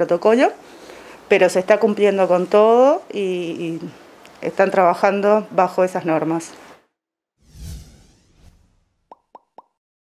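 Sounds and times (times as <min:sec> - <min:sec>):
whoosh: 0:07.4 - 0:09.0.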